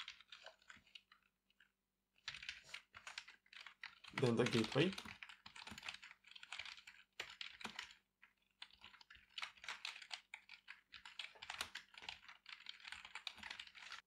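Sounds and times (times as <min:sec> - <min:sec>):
faint keyboard typing: 0:00.0 - 0:14.0.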